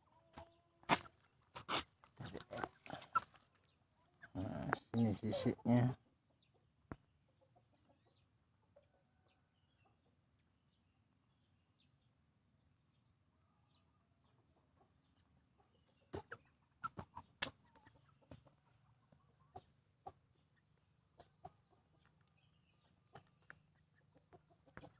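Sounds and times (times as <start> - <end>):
chickens clucking faintly: 0.0 - 24.9.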